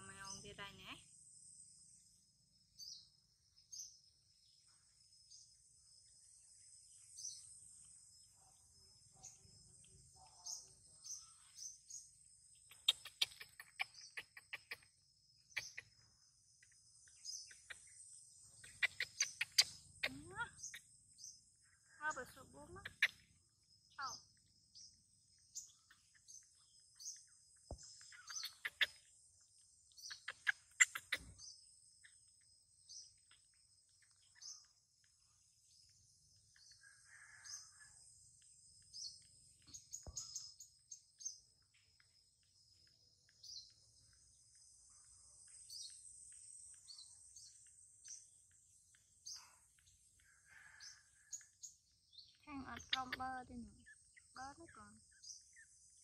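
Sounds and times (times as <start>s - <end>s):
short high bird chirps: 28.0s - 29.1s.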